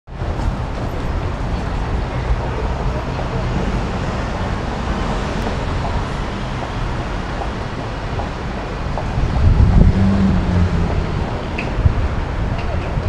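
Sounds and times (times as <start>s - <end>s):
bus and cars driving past: 0.1s - 13.0s.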